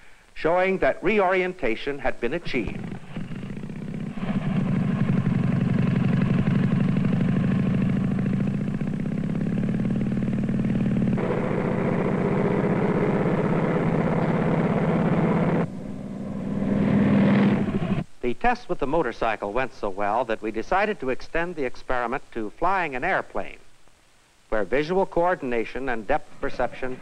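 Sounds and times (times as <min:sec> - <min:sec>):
motorcycle engine running: 0:02.5 - 0:18.0.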